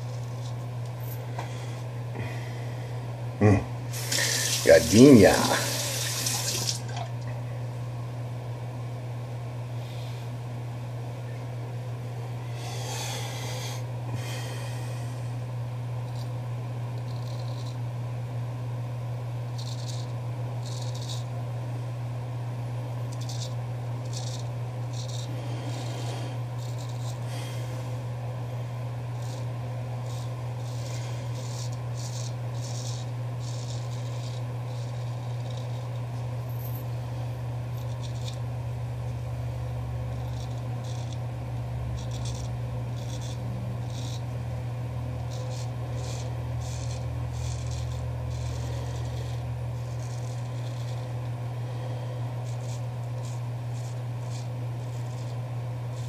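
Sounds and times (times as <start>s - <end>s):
razor scraping stubble: 0.0s - 2.4s, 3.9s - 7.1s, 16.0s - 17.9s, 19.5s - 21.4s, 23.0s - 56.0s
steady low hum: 0.0s - 56.0s.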